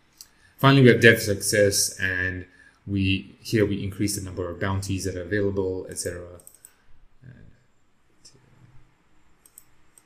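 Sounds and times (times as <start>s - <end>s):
mouse and keyboard clicks: 9.4s - 10.0s.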